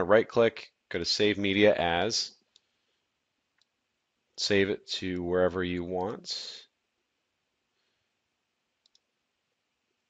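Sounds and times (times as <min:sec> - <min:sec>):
computer mouse click: 0:08.8 - 0:09.1.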